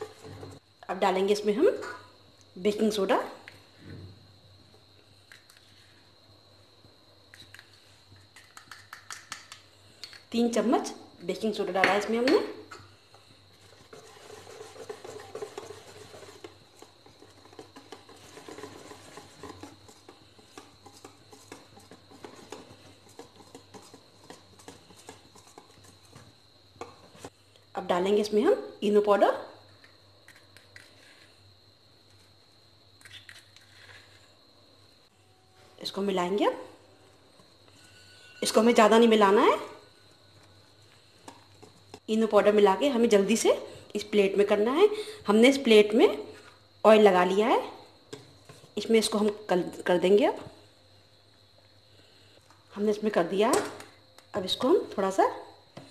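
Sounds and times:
whisk swishing through batter: 13.5s - 27.3s.

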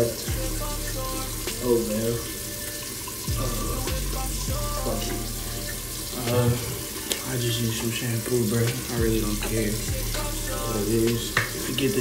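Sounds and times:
water running from tap into sink: 0.0s - 12.0s.

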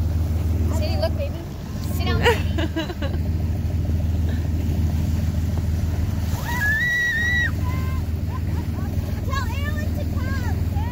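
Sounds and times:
motorboat engine drone: 0.0s - 10.9s
water rushing along hull: 0.0s - 10.9s.

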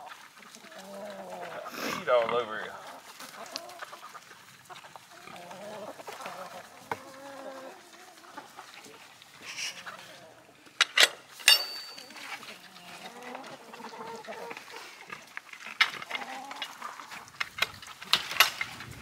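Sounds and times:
chickens clucking: 0.0s - 19.0s.

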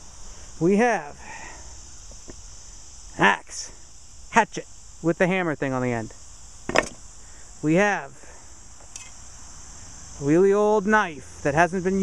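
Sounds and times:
insect chorus trilling: 0.0s - 12.0s.

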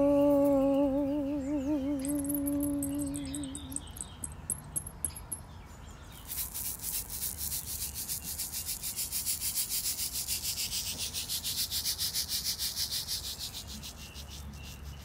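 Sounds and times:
hand rattle shaking: 1.8s - 5.4s, 6.2s - 14.0s.

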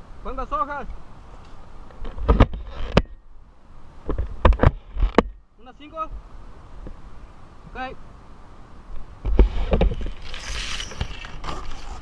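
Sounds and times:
sharp knocks and thumps: 2.0s - 3.1s, 4.1s - 5.4s.

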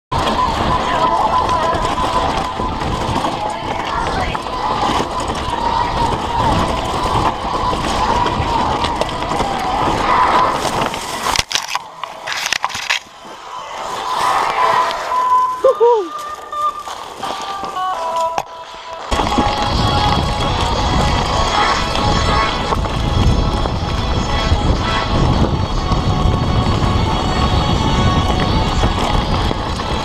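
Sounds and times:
wind on microphone: 0.1s - 15.6s, 19.1s - 30.0s
mountain bike rattling downhill: 0.1s - 30.0s
person shouting: 15.6s - 16.2s.

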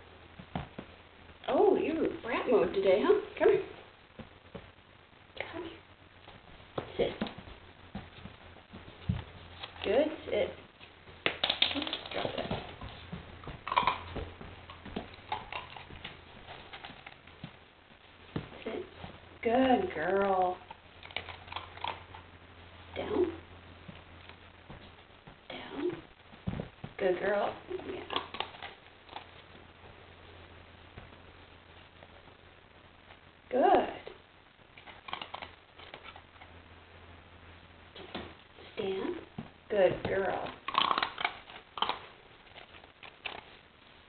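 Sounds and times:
puppy claws clicking on wooden floor: 11.2s - 17.6s, 40.1s - 43.5s.

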